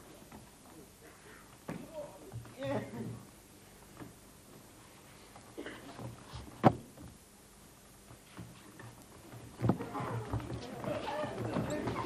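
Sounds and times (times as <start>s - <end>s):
feet stamping on stage floor: 8.0s - 12.0s.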